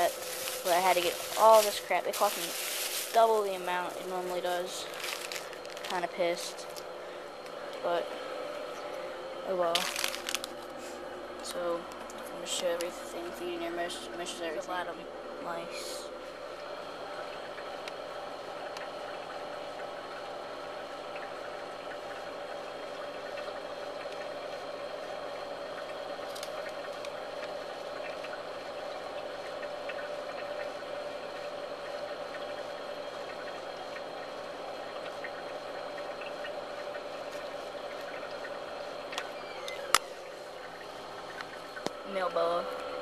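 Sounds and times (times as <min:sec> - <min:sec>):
machine hum: 0:00.0 - 0:43.0.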